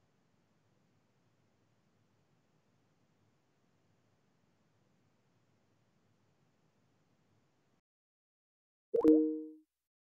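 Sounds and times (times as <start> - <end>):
two-note chime: 9.0 - 9.6.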